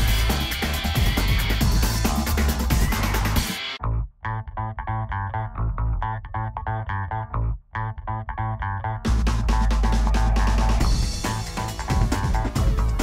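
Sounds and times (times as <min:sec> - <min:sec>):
busy music track: 0:00.0 - 0:13.0
plucked bass and guitar riff: 0:00.0 - 0:13.0.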